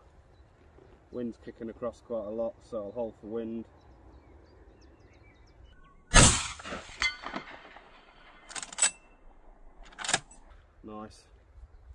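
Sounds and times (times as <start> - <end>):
loud rifle shot with echo: 6.1 - 10.2
sharp metallic clacks: 6.2 - 9.2.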